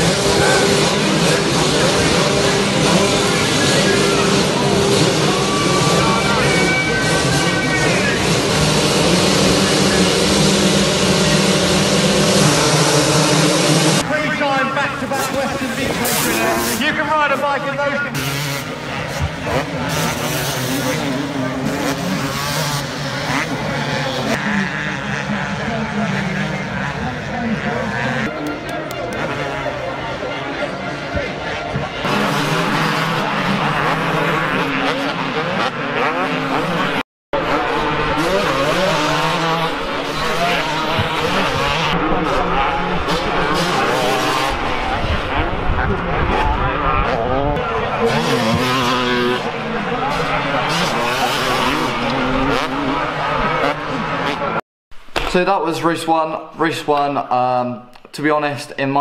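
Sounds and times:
motocross bikes revving: 0.0 - 56.1.

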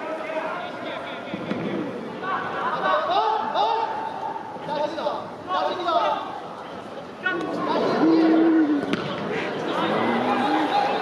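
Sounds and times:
players shouting: 7.2 - 11.0
ball being kicked: 8.8 - 9.2.

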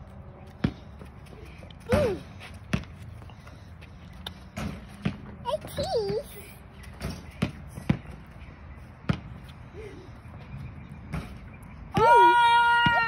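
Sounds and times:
basketball bouncing on dirt: 1.8 - 3.1, 4.4 - 8.3, 9.0 - 9.5.

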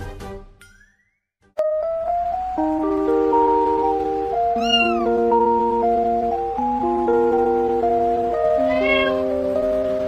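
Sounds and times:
background music of held notes: 1.6 - 10.0
kitten mewing: 4.6 - 5.2, 8.6 - 9.3.

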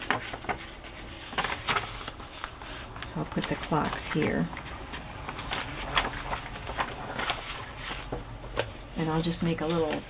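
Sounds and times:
paper pages rustling and tapping: 0.0 - 10.0.

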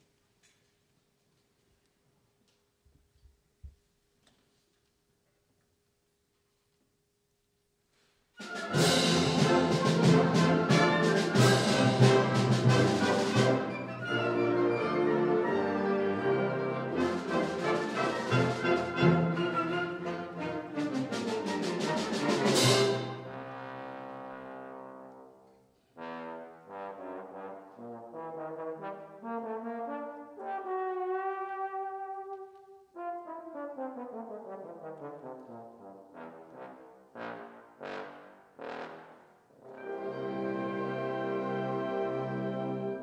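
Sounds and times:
concert band playing: 8.4 - 15.9
solo trombone: 22.4 - 25.4, 26.0 - 39.8.

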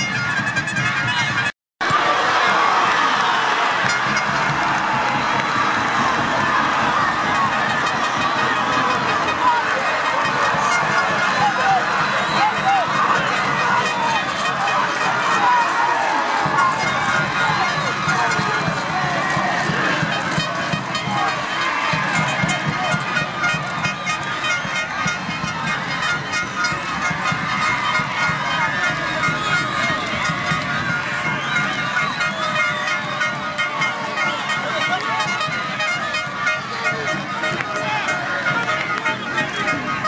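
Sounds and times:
crowd shouting and chattering: 0.0 - 40.0.

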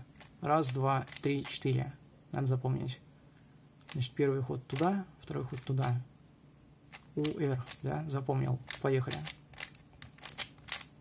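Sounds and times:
puzzle cube layers clicking: 0.2 - 1.6, 4.7 - 4.9, 6.9 - 7.9, 8.6 - 10.9.

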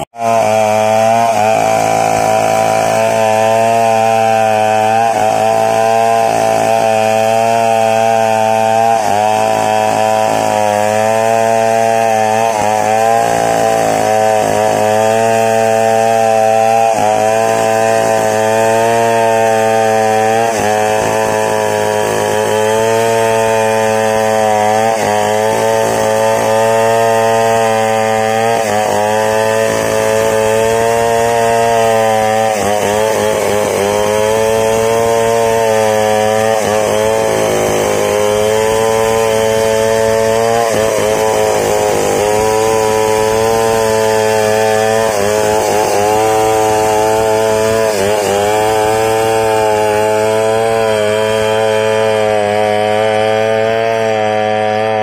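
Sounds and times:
chainsaw cutting wood: 0.0 - 55.0.

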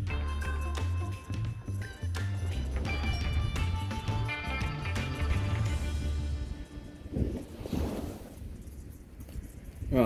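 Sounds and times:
wind on microphone: 6.9 - 10.0.

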